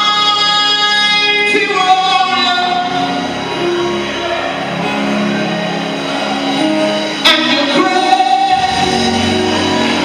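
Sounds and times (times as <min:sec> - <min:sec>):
man singing through microphone: 0:00.0 - 0:03.4, 0:07.2 - 0:10.0.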